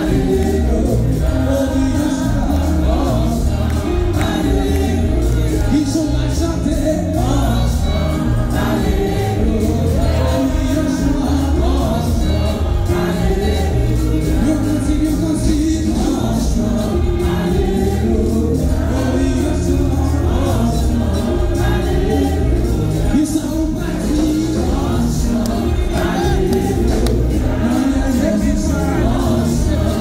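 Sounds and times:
amplified accompaniment with heavy bass: 0:00.0 - 0:30.0
choir singing gospel music: 0:00.0 - 0:30.0.

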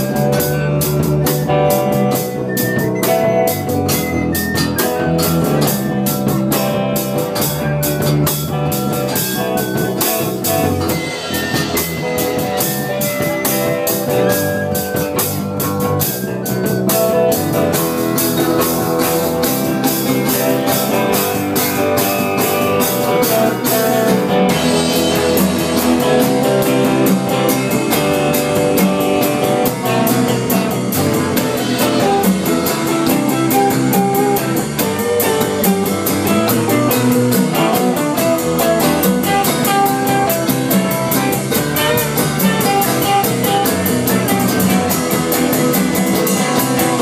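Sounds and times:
drum kit steady beat: 0:00.0 - 0:47.0
electric guitar: 0:00.0 - 0:47.0.

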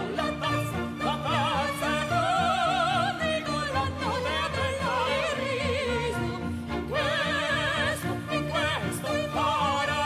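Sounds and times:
woman singing operatically: 0:00.0 - 0:10.0.

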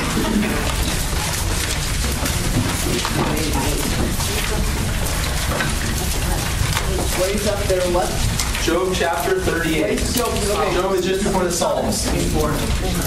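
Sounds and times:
low voices murmuring: 0:00.0 - 0:13.0
paper pages turning: 0:00.0 - 0:13.0.

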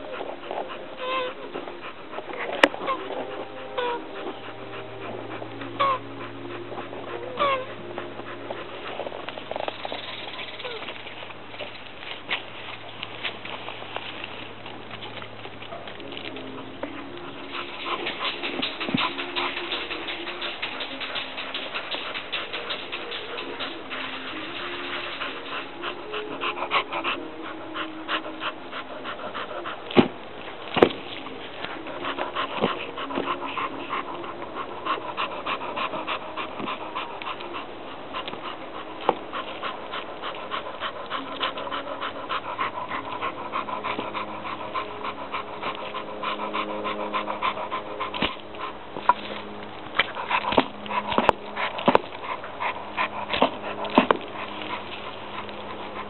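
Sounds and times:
dog panting: 0:00.0 - 0:56.0.

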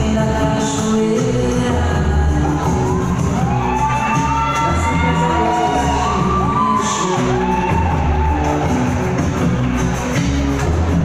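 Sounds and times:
loud music with bass beat: 0:00.0 - 0:11.0
audience whooping and cheering: 0:02.6 - 0:10.1.

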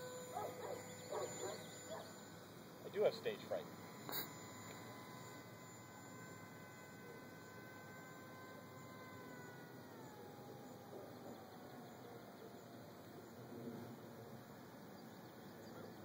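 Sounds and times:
distant model plane motor whine: 0:00.0 - 0:16.0.

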